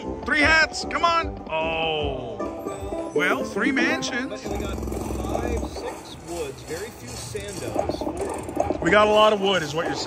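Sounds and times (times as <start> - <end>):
slot machine electronic sounds: 2.5 - 6.0
background chatter: 2.6 - 10.0.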